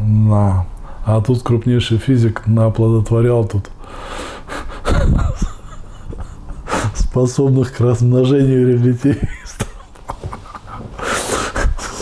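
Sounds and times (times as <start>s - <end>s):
man laughing in breathy bursts: 4.4s - 7.1s, 9.1s - 12.0s.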